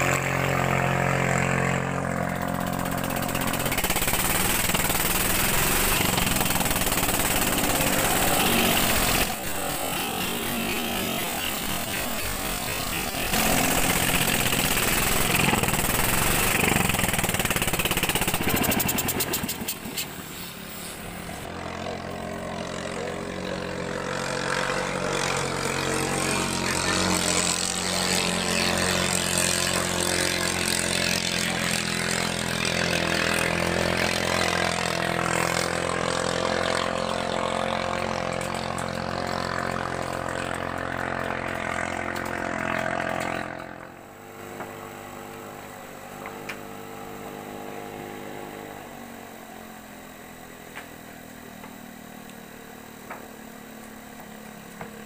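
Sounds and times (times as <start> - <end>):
boat engine running flat out: 0.0 - 55.0
steady distant engine drone: 0.0 - 55.0
rush of spray: 2.0 - 21.6.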